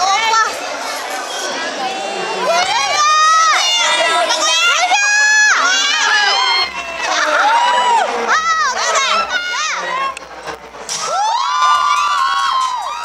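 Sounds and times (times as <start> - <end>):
young audience shouting and cheering: 1.9 - 13.0.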